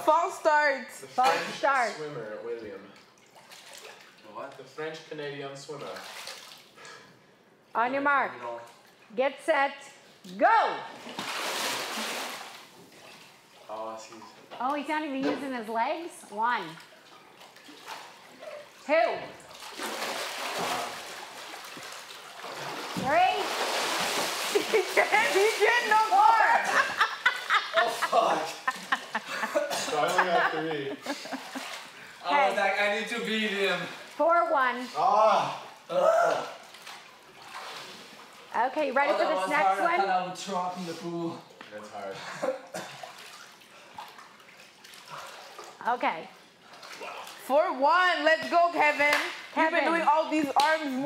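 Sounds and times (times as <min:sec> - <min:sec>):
pool water splashing: 0:00.0 - 0:07.0, 0:08.1 - 0:51.0
person laughing: 0:26.5 - 0:31.8.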